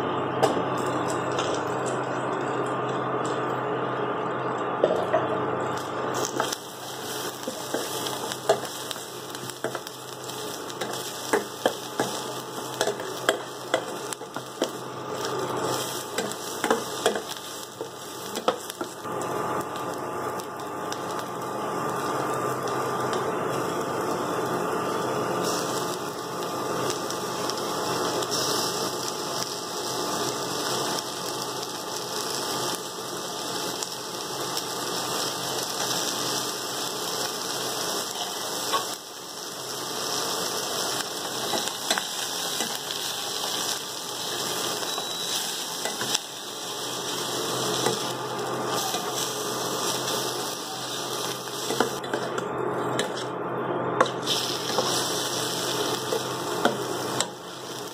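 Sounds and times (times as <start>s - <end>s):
food sizzling in a pan: 5.8s - 52.4s, 54.0s - 57.9s.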